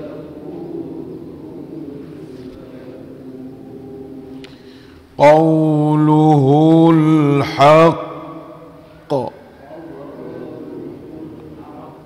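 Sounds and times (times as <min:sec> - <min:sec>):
man chanting melodic recitation: 0:05.2 - 0:12.0.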